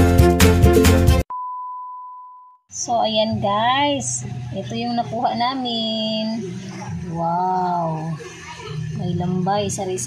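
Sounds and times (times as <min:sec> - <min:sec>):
background music: 0:00.0 - 0:01.3
high beep tone: 0:01.3 - 0:02.6.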